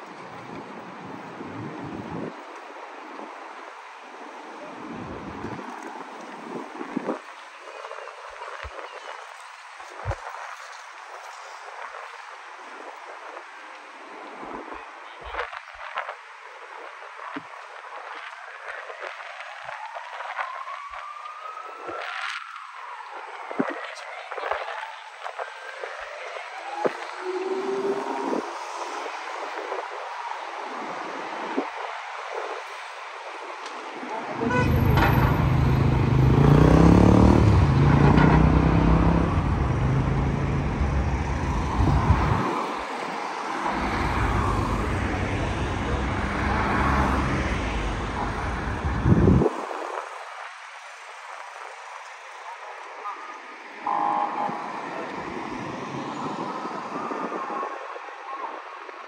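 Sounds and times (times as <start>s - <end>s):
road traffic: 26.1s - 50.0s, 50.9s - 58.8s
passers-by talking: 33.7s - 49.4s
large vehicle engine running: 34.5s - 42.4s.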